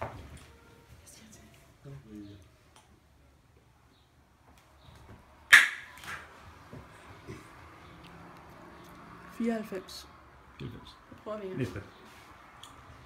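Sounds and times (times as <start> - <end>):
room echo: 5.5 - 6.3.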